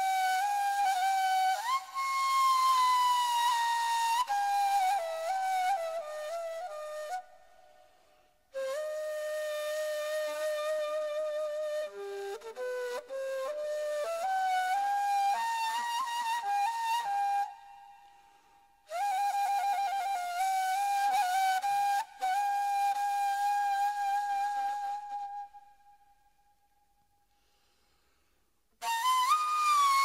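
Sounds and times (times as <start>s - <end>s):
solo flute melody: 0.0s - 27.1s, 28.8s - 30.0s.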